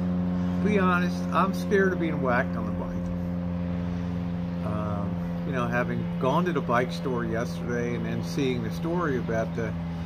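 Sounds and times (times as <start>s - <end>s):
motor humming steadily: 0.0s - 10.0s.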